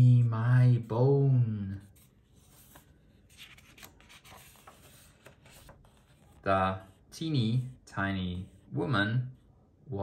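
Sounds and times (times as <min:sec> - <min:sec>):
paper rustling: 0:01.8 - 0:06.5.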